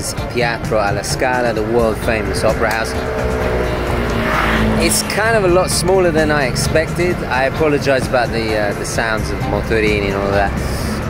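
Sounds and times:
low traffic rumble: 0:00.0 - 0:11.0
motor scooter engines: 0:00.0 - 0:11.0.

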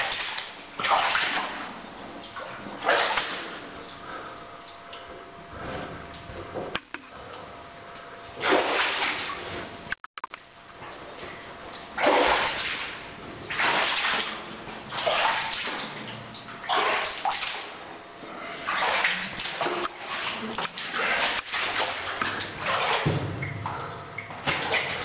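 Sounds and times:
footsteps wading through water: 0:00.0 - 0:06.5, 0:08.0 - 0:09.9, 0:10.7 - 0:25.0.

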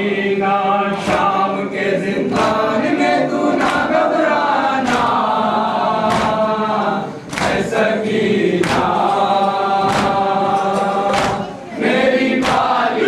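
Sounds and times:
group chanting a lament: 0:00.0 - 0:13.0
sharp percussive strike: 0:06.0 - 0:06.5, 0:08.6 - 0:11.7, 0:12.4 - 0:12.8.

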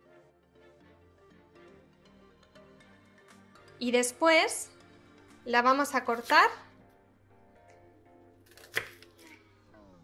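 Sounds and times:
faint background music: 0:00.0 - 0:10.0
knife slicing onion: 0:06.0 - 0:06.6, 0:08.5 - 0:09.4.

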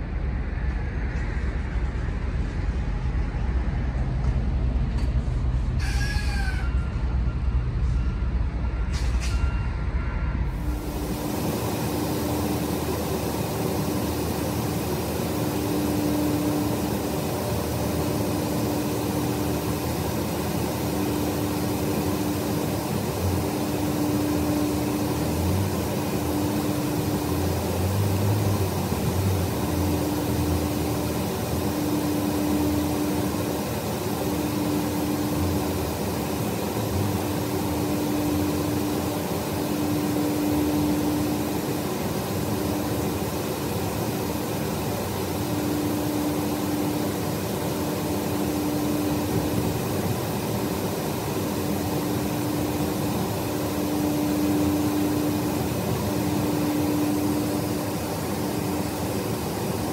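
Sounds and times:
steady tone: 0:07.0 - 0:59.9
truck cab mechanical hum: 0:09.8 - 0:59.9.

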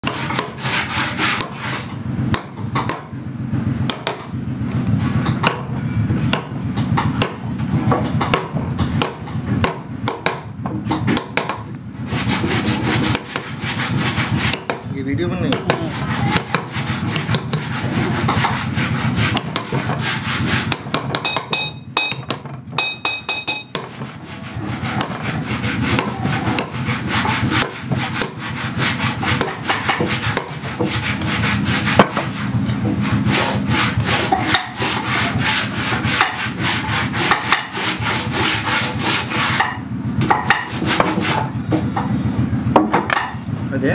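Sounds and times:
chisel scraping wood: 0:00.0 - 0:03.1, 0:05.0 - 0:42.1.

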